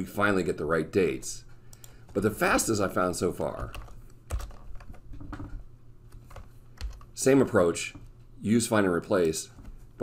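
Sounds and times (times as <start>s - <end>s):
computer keyboard key clicks: 6.3s - 7.1s.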